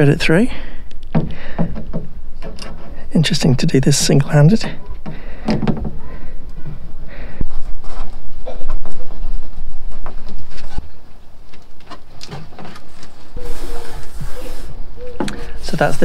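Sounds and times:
sharp knocks: 0:01.1 - 0:02.7
cable ties clicking and scraping: 0:02.4 - 0:03.1.

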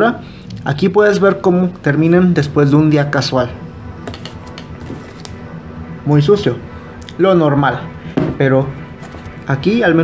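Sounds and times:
soft background music: 0:00.7 - 0:10.0.

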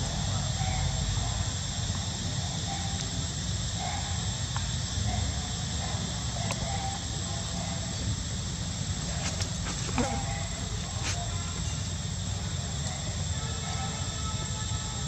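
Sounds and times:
steady high hiss: 0:00.0 - 0:15.0.

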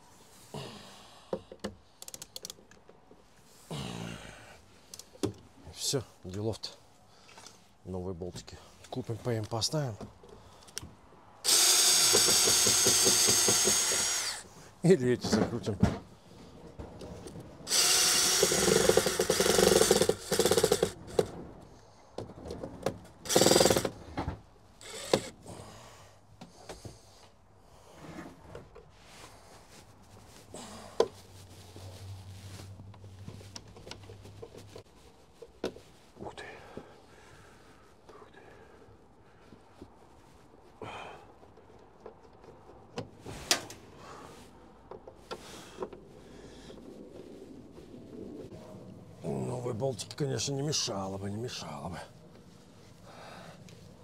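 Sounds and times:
cordless drill motor: 0:11.4 - 0:14.5, 0:17.6 - 0:21.3, 0:23.2 - 0:24.0, 0:24.8 - 0:25.4.

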